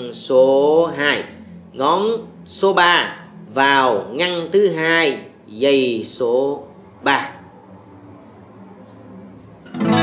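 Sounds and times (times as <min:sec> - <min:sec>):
acoustic guitar chord strum: 0:09.6 - 0:10.0.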